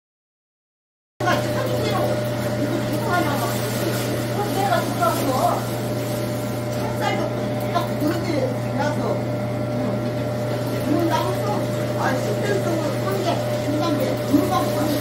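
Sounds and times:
women talking: 1.2 - 5.9, 6.6 - 8.6, 10.8 - 15.0
food grinder motor whining: 1.2 - 15.0.

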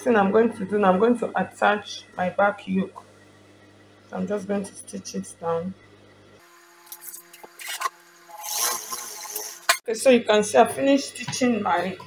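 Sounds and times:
faint steady hum: 0.0 - 7.0.

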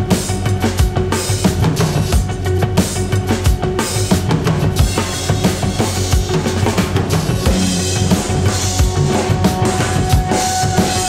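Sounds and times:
sustained held tones: 7.5 - 11.0.

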